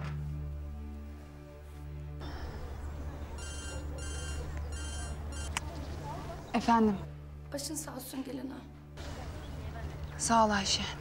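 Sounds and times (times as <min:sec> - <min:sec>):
low music bed: 0:00.0 - 0:11.0
mobile phone ringtone: 0:03.4 - 0:05.5.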